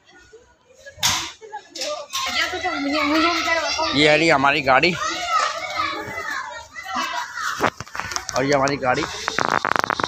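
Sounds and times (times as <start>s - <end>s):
children talking: 0.0s - 10.0s.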